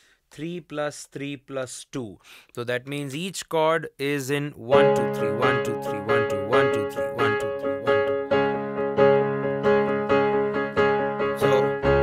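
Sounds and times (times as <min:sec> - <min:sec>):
digital piano chords: 0:04.7 - 0:12.0.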